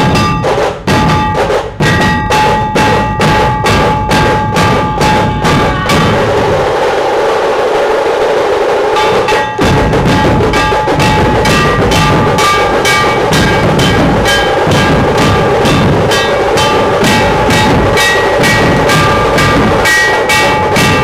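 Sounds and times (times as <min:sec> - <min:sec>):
drums beating fast rhythm: 0:00.0 - 0:21.0.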